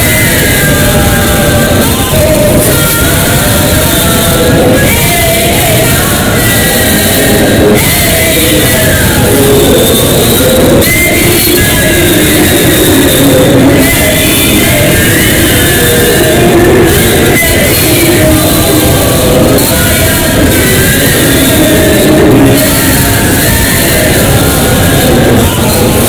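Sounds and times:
boys singing through pa system: 0:00.0 - 0:26.0.

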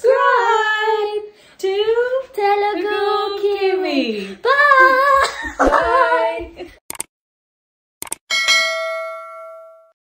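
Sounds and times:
quick clicks: 0:06.9 - 0:07.1, 0:08.0 - 0:08.2
bright bell ding: 0:08.3 - 0:10.0.

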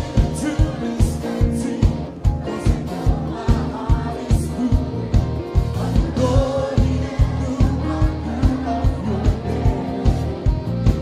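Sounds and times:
choir singing gospel song: 0:00.0 - 0:10.8
amplified accompaniment with beat: 0:00.0 - 0:11.0.

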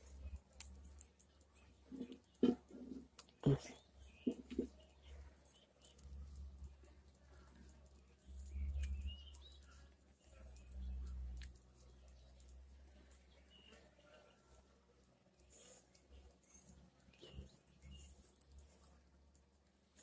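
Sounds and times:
faint bird chirps: 0:01.5 - 0:18.8.

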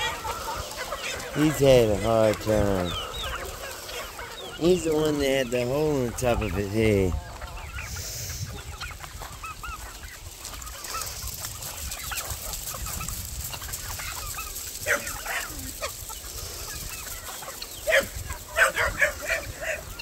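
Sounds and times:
chickens clucking: 0:00.0 - 0:20.0.

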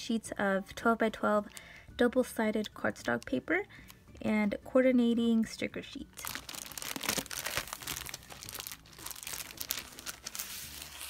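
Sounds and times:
plastic packaging crinkling: 0:06.2 - 0:11.0.

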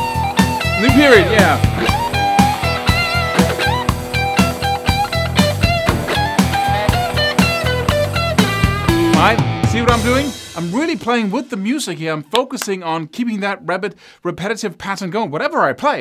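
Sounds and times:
electric guitar solo: 0:00.0 - 0:10.4
drums and bass backing track: 0:00.0 - 0:12.4.

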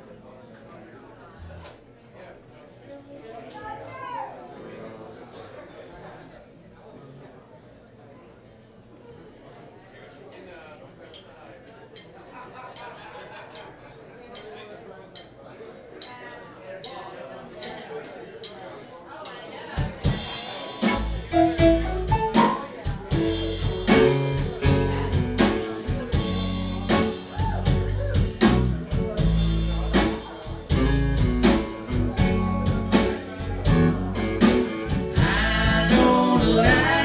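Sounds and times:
drums: 0:19.2 - 0:37.0
live band playing: 0:19.8 - 0:37.0
electric guitars: 0:20.1 - 0:37.0
person singing: 0:35.1 - 0:37.0.

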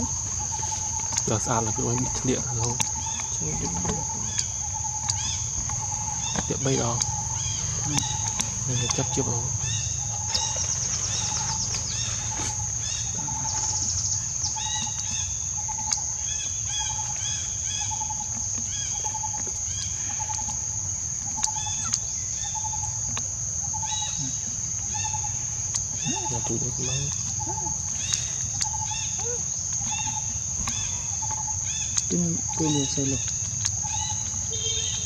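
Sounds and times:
bird repeating low note: 0:00.0 - 0:16.0, 0:23.7 - 0:35.0
birds chirping: 0:00.0 - 0:35.0
high insect drone: 0:00.0 - 0:35.0.

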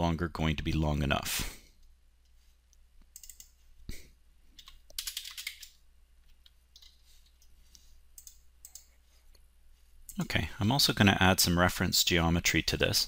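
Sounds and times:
computer keyboard typing: 0:03.1 - 0:03.6, 0:04.6 - 0:07.5, 0:08.2 - 0:08.9.

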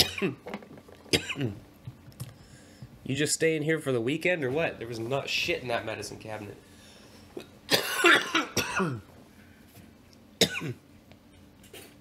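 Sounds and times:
man coughing: 0:00.0 - 0:00.4, 0:01.1 - 0:01.6, 0:07.7 - 0:09.1, 0:10.4 - 0:10.8.

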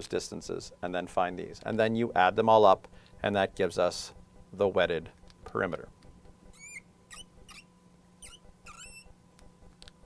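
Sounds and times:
faint electrical hum: 0:00.0 - 0:10.0
marker squeaking on glass: 0:06.5 - 0:09.2.

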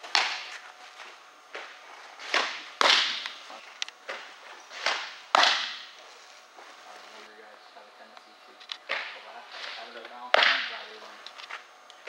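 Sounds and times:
ball smacking into mitt: 0:04.8 - 0:05.9.

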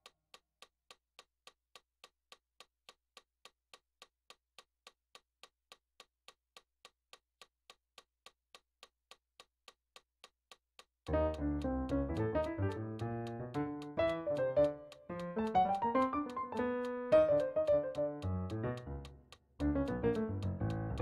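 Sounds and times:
faint metronome clicks: 0:08.5 - 0:21.0.

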